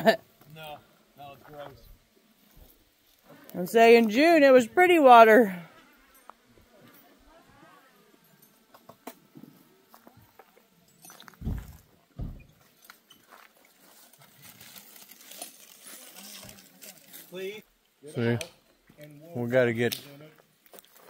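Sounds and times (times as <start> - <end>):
faint distant voices: 5.5 - 13.5.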